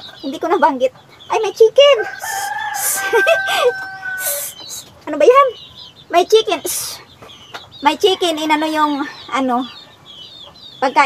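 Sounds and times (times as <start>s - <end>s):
rooster crowing: 2.0s - 4.6s.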